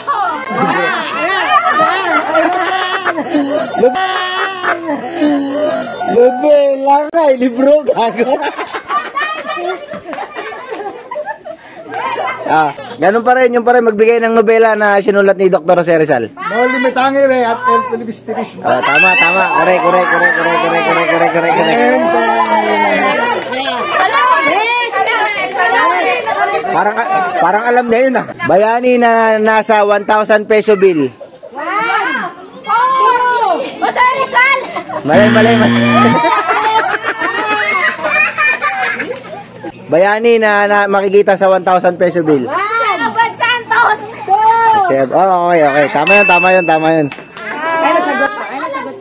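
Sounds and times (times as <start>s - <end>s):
excited group of people talking: 0.0s - 49.0s.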